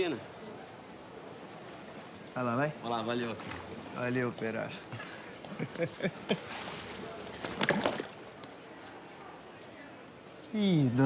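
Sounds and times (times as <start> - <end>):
splashing in pool: 6.4 - 8.3.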